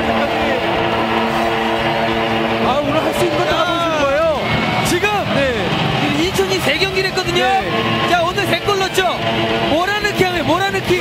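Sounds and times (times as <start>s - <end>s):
held musical chord: 0.0s - 10.8s.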